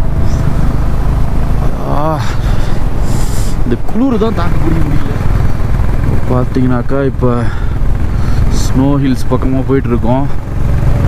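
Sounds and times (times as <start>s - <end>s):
motorcycle engine rumble: 0.0s - 11.0s
wind rush on microphone: 0.0s - 11.0s.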